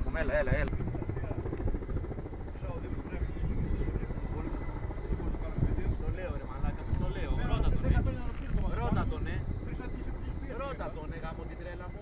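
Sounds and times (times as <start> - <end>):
distant helicopter rotor beating: 0.0 - 12.0.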